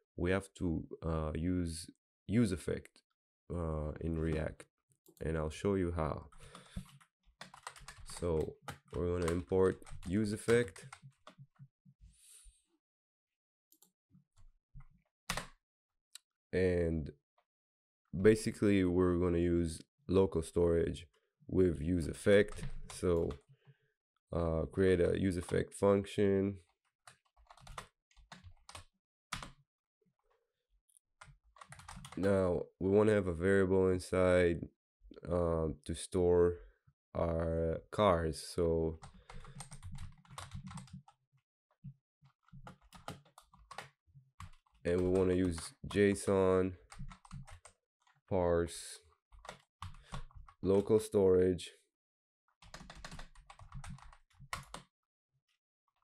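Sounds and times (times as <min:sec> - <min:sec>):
faint keyboard typing: 0:06.3 - 0:11.6, 0:15.3 - 0:15.5, 0:22.2 - 0:23.4, 0:25.4 - 0:25.6, 0:27.0 - 0:29.6, 0:31.2 - 0:32.5, 0:39.0 - 0:41.2, 0:41.8 - 0:46.2, 0:46.8 - 0:48.2, 0:49.3 - 0:51.0, 0:52.6 - 0:54.9.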